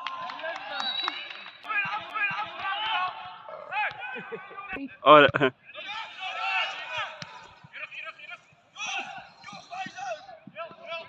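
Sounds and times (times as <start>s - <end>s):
distant voices shouting: 5.7s - 11.0s.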